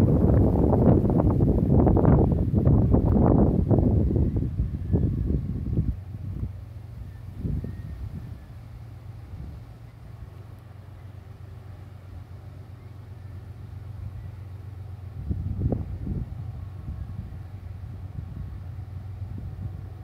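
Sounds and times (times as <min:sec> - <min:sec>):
wind buffeting microphone: 0:00.0 - 0:10.3, 0:13.5 - 0:20.0
freight train rumbling past: 0:00.0 - 0:20.0.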